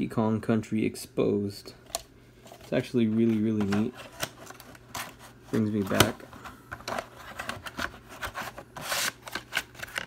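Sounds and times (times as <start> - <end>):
cardboard scraping against plastic: 2.6 - 10.0.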